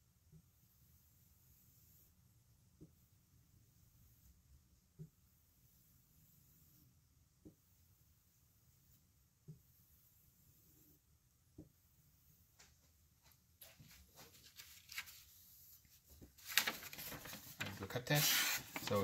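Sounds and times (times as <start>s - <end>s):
scratchy rustles: 12.6s - 19.0s.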